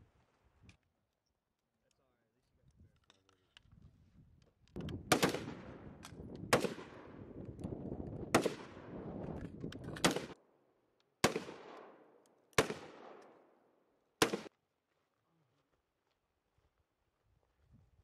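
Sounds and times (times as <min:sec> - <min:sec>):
rifle shots with echo: 0:04.9 - 0:07.4, 0:08.2 - 0:09.1, 0:09.8 - 0:10.4, 0:11.2 - 0:14.5.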